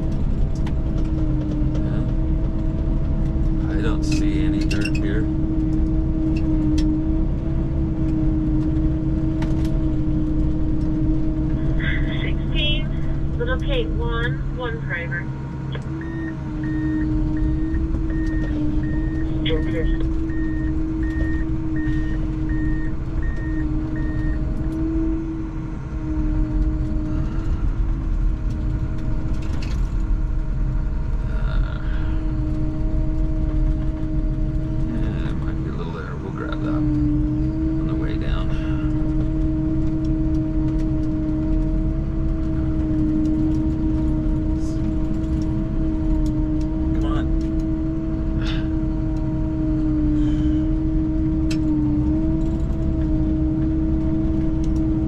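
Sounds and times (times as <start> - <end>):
snowcat engine and tracks droning: 0.0 - 55.0.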